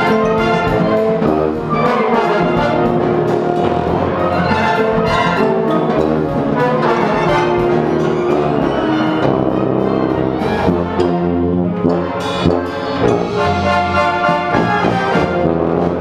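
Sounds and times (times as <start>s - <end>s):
tuba: 0.0s - 16.0s
wind ensemble playing: 0.0s - 16.0s.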